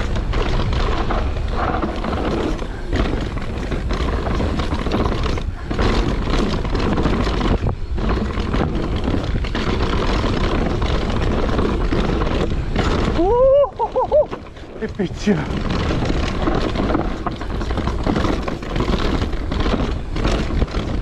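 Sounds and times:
bike clattering over bumps: 0:00.0 - 0:21.0
bike tyres rolling over dirt: 0:00.0 - 0:21.0
wind rumble on microphone: 0:00.0 - 0:21.0.

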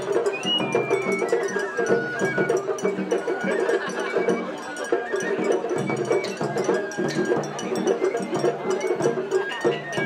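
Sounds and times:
drums beating quickly: 0:00.0 - 0:10.0
high bamboo flute melody: 0:00.0 - 0:10.0.

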